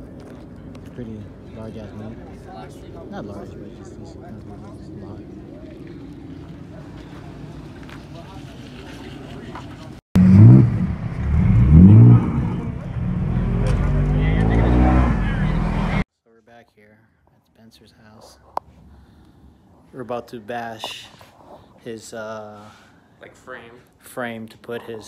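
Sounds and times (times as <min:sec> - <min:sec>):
car engine revving: 0:10.2 - 0:16.0.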